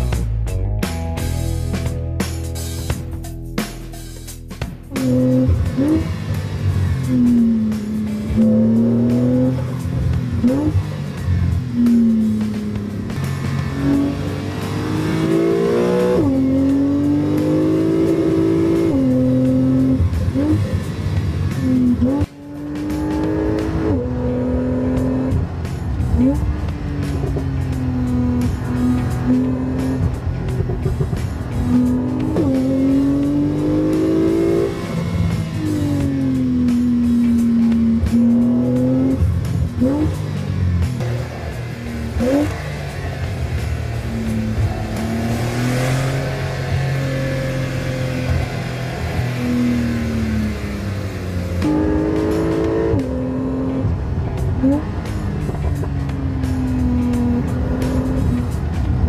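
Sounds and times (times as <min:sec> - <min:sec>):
background music: 0:00.0 - 0:59.0
car engine and exhaust revving: 0:00.0 - 0:59.0.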